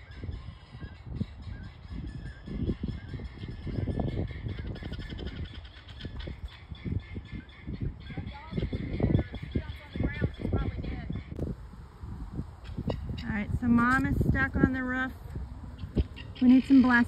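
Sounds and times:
guinea fowl calling: 0.0s - 11.4s, 15.8s - 17.0s.

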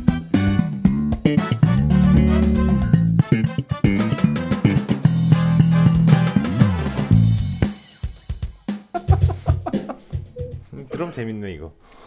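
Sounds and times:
electric bass playing: 0.0s - 7.7s
drum groove: 0.0s - 10.8s.

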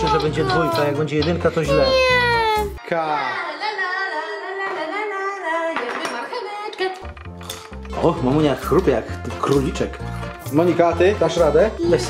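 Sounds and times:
background music with singing: 0.0s - 12.0s.

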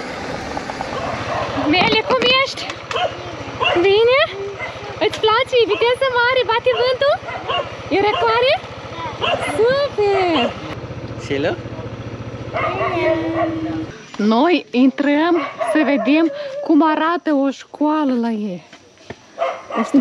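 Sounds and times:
scooter engine idling: 0.0s - 14.5s.

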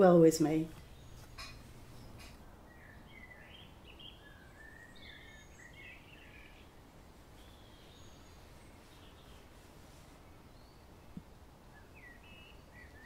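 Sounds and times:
faint bird chirps: 0.8s - 13.0s.

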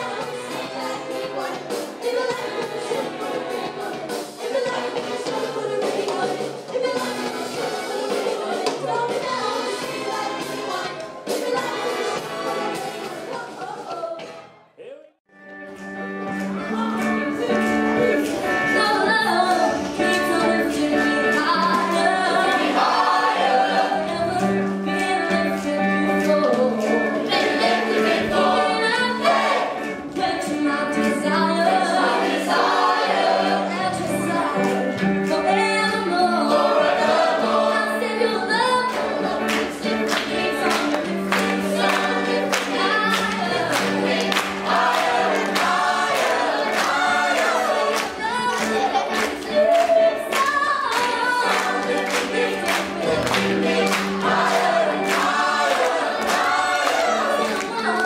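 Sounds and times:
youth choir singing: 0.0s - 14.2s, 16.6s - 58.0s
woman singing into microphone: 48.1s - 51.9s.

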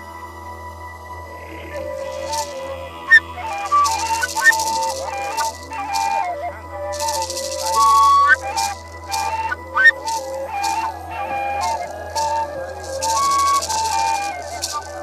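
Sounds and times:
cane flutes playing melody: 0.0s - 15.0s
gourd rattle shaking: 1.6s - 15.0s.

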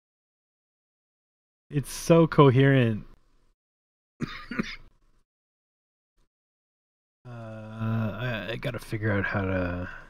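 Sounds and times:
man clearing his throat: 4.2s - 4.9s.

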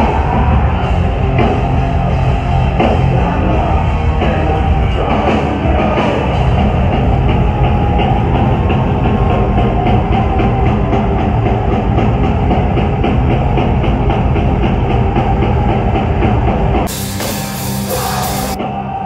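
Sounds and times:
fast drumming on drum kit: 0.0s - 18.6s
distorted electric guitar: 0.0s - 19.0s.

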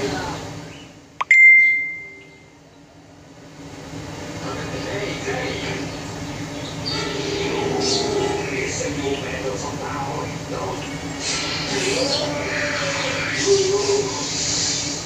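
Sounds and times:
loud high-pitched beep: 1.2s - 2.5s
crowd voices: 4.4s - 14.3s.

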